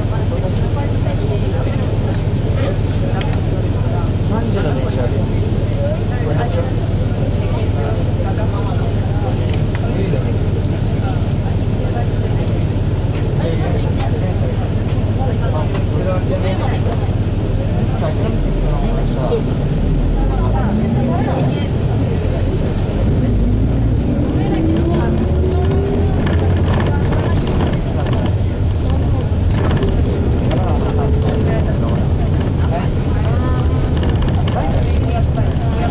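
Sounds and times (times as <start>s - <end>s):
bus engine idling and revving: 0.0s - 35.9s.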